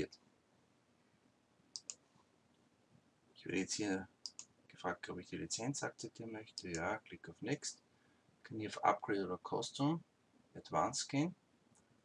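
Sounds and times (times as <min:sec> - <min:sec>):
computer mouse clicks: 0:01.7 - 0:02.0, 0:04.2 - 0:04.5.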